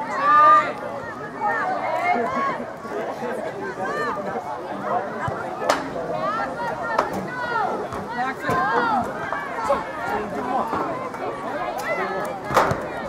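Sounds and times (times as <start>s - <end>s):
crowd chattering and calling out: 0.0s - 13.0s.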